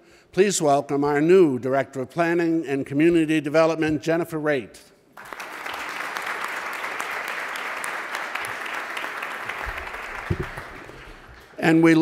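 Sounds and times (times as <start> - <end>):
large audience applauding: 5.2 - 11.6.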